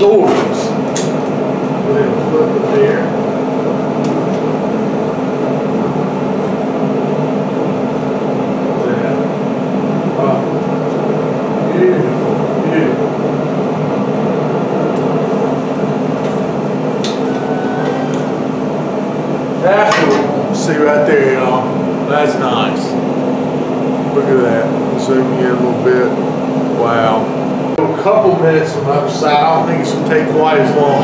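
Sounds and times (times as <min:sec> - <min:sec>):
grill fan humming: 0:00.0 - 0:31.0.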